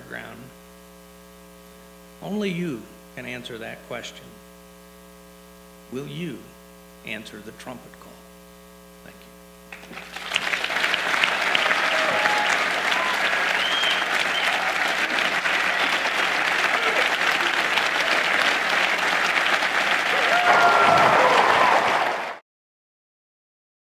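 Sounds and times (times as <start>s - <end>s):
audience applauding: 9.7s - 22.4s
people cheering: 9.8s - 22.4s.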